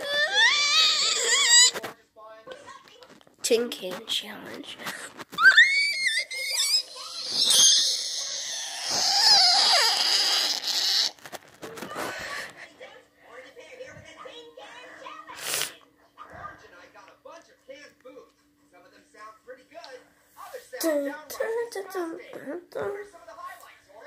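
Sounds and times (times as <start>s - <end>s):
child screaming: 0.0s - 1.7s, 5.4s - 11.1s.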